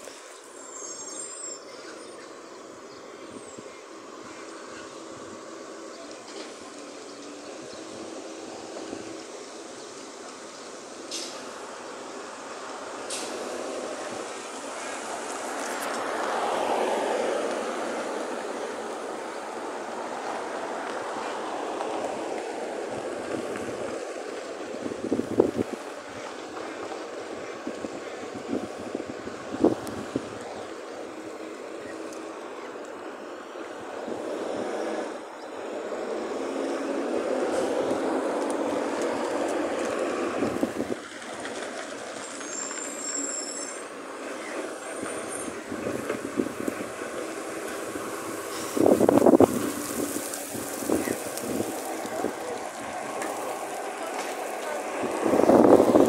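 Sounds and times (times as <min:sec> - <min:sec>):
road traffic: 0:00.0 - 0:56.0
garbage truck: 0:10.8 - 0:56.0.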